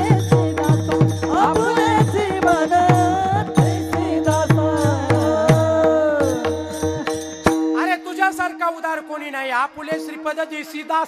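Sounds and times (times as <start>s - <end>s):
men singing a devotional chant: 0.0s - 8.3s
hand cymbals clashing: 0.0s - 8.4s.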